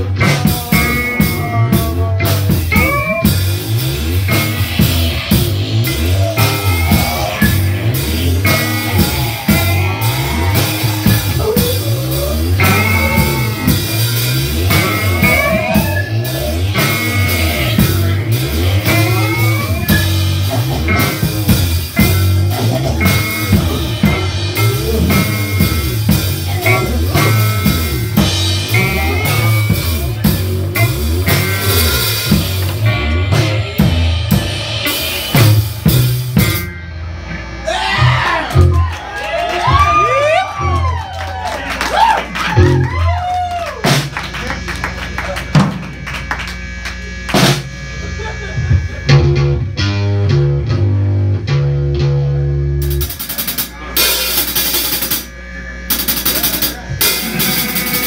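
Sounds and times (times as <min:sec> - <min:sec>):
drum kit: 0:00.0 - 0:58.0
electric guitar: 0:00.0 - 0:58.0
tones sliding in pitch: 0:02.5 - 0:35.4.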